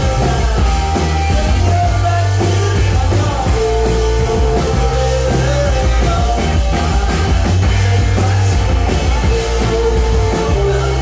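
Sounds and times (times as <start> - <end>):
drums with cymbal hits: 0.0 - 11.0
electric bass: 0.0 - 11.0
electric guitar: 0.0 - 11.0.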